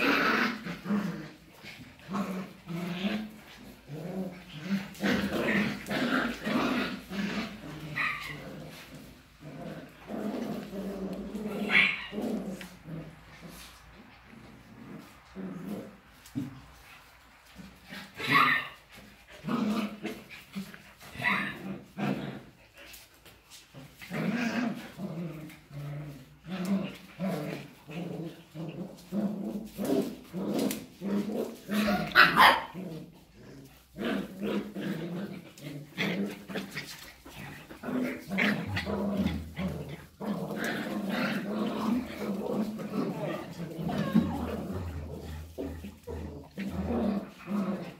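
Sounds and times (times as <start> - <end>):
dogs play-wrestling: 0.0 - 47.9.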